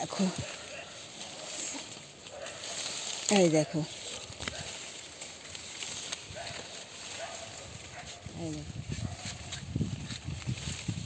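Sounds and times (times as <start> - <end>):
leafy branches rustling: 0.0 - 11.0.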